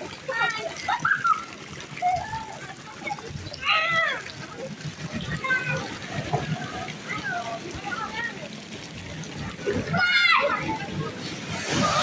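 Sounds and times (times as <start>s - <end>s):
children calling: 0.0s - 12.0s
water splashing: 0.0s - 12.0s.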